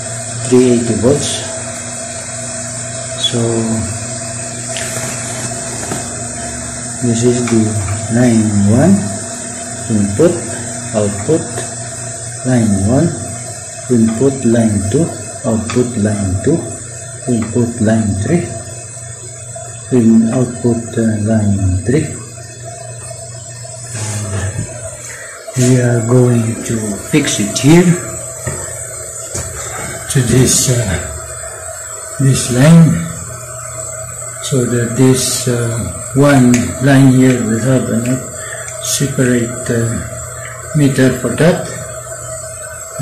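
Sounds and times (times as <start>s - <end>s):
constant hiss: 0.0s - 43.0s
machine hum: 0.0s - 43.0s.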